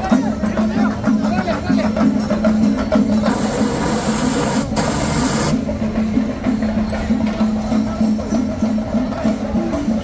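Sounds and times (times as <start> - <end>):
procession music with percussion: 0.0 - 10.0.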